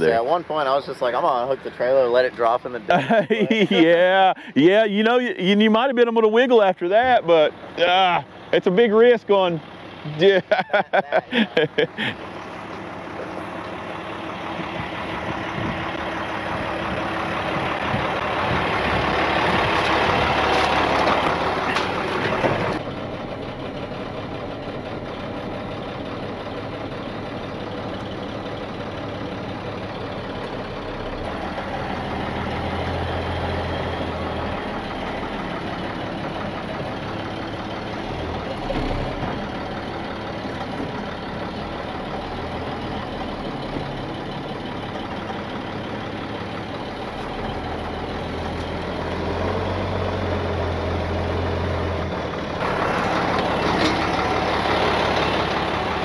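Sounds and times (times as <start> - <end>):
truck engine idling: 0.0 - 56.0.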